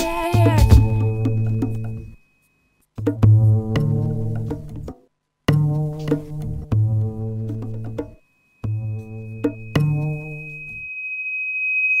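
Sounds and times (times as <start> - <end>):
high pure tone: 0.0 - 2.6, 8.2 - 12.0.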